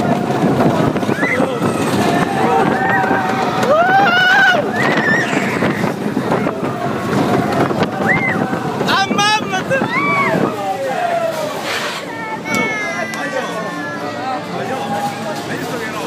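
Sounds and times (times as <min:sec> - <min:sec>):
wind on microphone: 0:00.0 - 0:11.3
riders screaming and yelling: 0:00.0 - 0:15.1
roller coaster train moving: 0:00.0 - 0:16.0.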